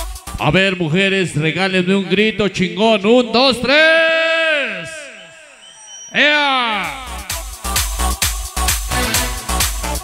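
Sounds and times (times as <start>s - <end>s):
person yelling into microphone with echo: 0.4s - 7.7s.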